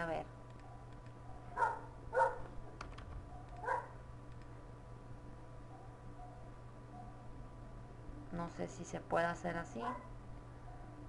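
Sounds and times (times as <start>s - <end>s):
dog barking: 0.7s - 2.5s, 3.3s - 4.0s.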